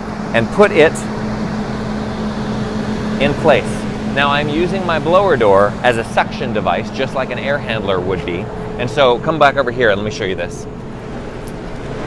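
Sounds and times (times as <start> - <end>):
fan humming steadily: 0.0 - 12.0.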